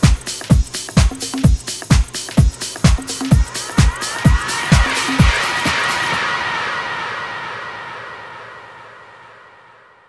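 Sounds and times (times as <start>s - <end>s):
swirling wash with sweeping tones: 3.4s - 9.9s.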